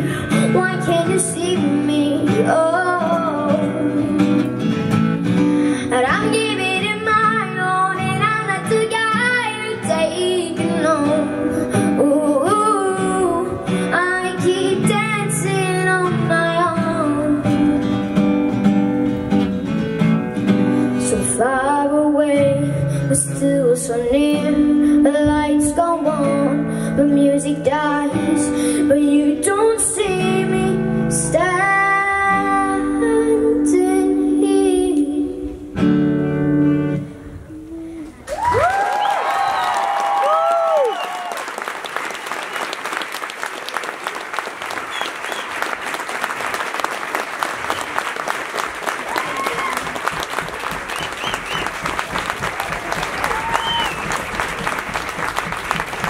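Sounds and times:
child singing: 0.0s - 4.4s, 5.8s - 17.8s, 21.0s - 35.7s
strummed acoustic guitar: 0.0s - 21.4s
whoops and cheers: 38.3s - 41.6s, 49.0s - 54.4s
audience applause: 38.3s - 56.0s.

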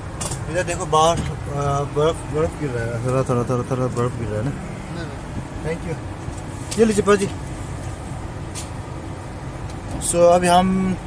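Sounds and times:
low rumble of vehicle noise: 0.0s - 11.0s.

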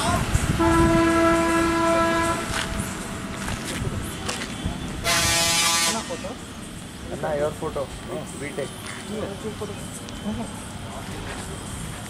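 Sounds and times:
lorry horn blasts: 0.5s - 2.6s, 5.0s - 6.2s.

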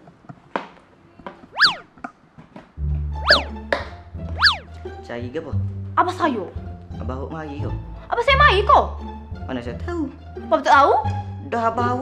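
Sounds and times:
swooping sound effects: 1.6s - 1.9s, 3.2s - 3.6s, 4.3s - 4.7s
bass line: 2.8s - 4.7s
comic background music: 3.1s - 5.4s.

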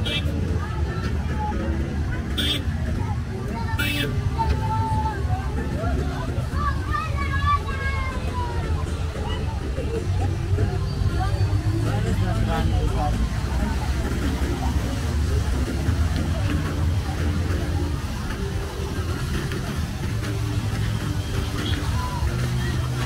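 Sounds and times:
chatter of passers-by: 0.0s - 23.0s
road traffic rumble: 0.0s - 23.0s.

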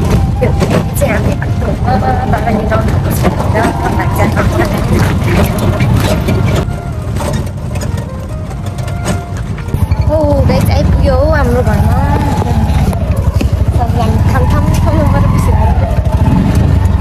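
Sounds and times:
voices: 0.0s - 6.9s, 9.2s - 17.0s
auto-rickshaw engine running: 0.0s - 17.0s
body rattling: 0.0s - 17.0s.

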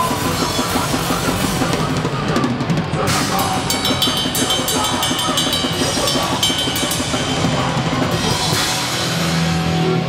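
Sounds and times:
punk rock band playing live: 0.0s - 10.0s
fast cymbal strokes: 3.1s - 9.6s
cymbal crash: 3.1s - 10.0s.

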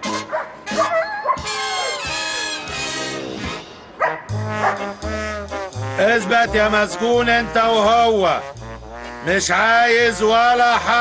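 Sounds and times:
brassy swing music: 0.0s - 11.0s
dog barking and yipping: 0.1s - 2.6s, 4.0s - 5.0s.

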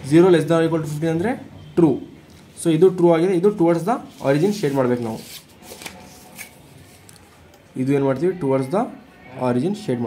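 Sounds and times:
paper rustling: 4.0s - 7.4s.

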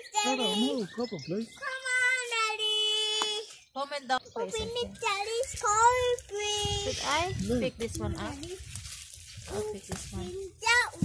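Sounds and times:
child calling out sing-song: 4.5s - 7.4s, 10.4s - 11.0s.

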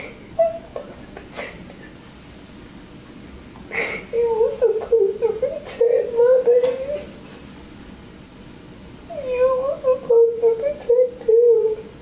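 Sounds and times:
woman crying: 0.0s - 1.5s, 3.7s - 7.1s.

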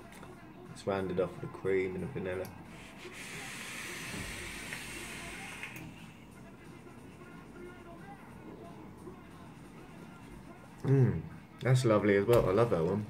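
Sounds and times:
e-cigarette hissing draw: 2.7s - 6.2s
faint hiss: 2.8s - 6.1s.

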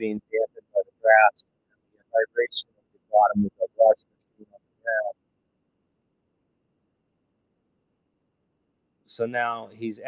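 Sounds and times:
person speaking: 0.0s - 1.4s, 2.1s - 5.1s.

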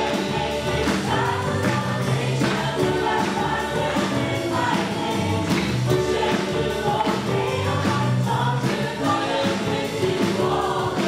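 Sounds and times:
drums: 0.0s - 11.0s
voices singing together: 0.0s - 11.0s.

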